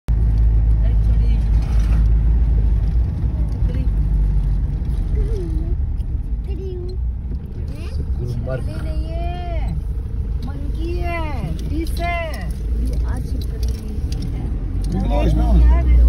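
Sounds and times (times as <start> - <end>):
car engine and tyres rumbling: 0.1 - 16.0.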